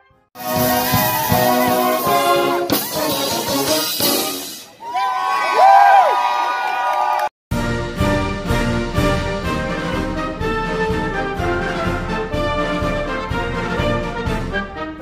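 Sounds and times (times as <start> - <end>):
brass band playing: 0.4 - 4.7, 7.5 - 15.0.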